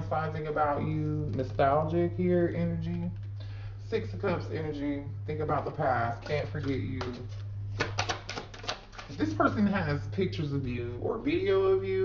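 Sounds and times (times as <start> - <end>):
steady low hum: 0.0 - 12.0
cards clicking while shuffled: 6.2 - 9.2.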